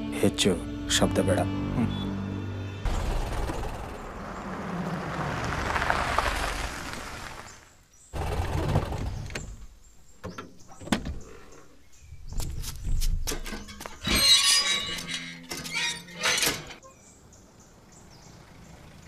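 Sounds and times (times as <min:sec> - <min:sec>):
low engine rumble: 0:02.7 - 0:07.6
car driving past: 0:02.8 - 0:07.7.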